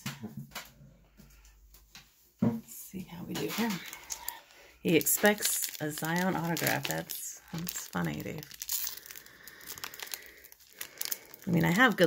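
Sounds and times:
foil wrapper crinkling: 3.3s - 12.0s.

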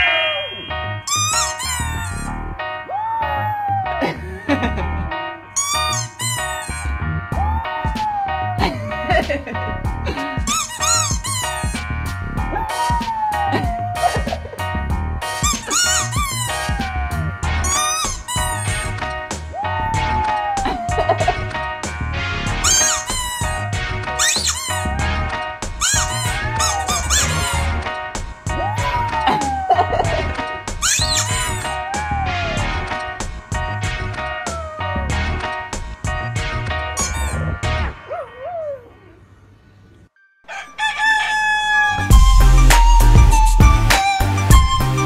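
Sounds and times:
squeaky dog toy squeaks: 0.0s - 2.4s, 5.6s - 7.0s, 10.4s - 11.9s, 15.4s - 16.8s, 17.6s - 18.9s, 22.6s - 25.2s, 25.8s - 27.8s, 28.8s - 31.7s, 37.0s - 37.6s
background music: 0.0s - 38.3s, 41.9s - 45.0s
dog howling: 2.9s - 4.0s, 7.4s - 9.0s, 12.4s - 14.4s, 15.5s - 18.1s, 19.5s - 21.4s, 22.6s - 27.8s, 28.5s - 30.1s, 30.8s - 32.6s, 34.2s - 35.1s, 38.0s - 39.2s, 41.1s - 45.0s.

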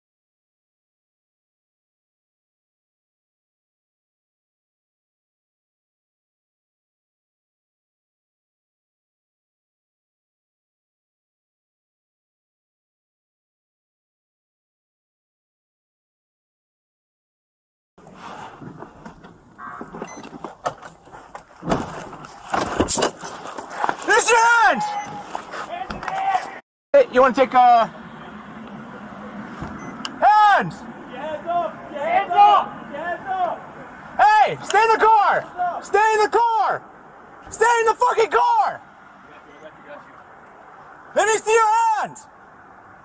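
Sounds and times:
camera rustling against clothing: 18.0s - 24.3s, 25.0s - 26.6s
car interior rumble: 18.0s - 25.6s
outdoor background noise: 18.0s - 43.0s
short tone: 19.6s - 20.4s.

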